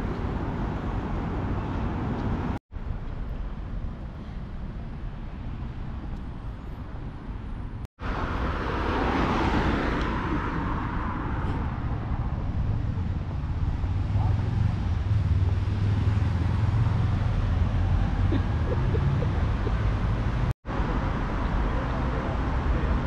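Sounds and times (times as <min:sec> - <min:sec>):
low rumble of traffic: 0:00.0 - 0:23.0
car passing: 0:08.0 - 0:23.0.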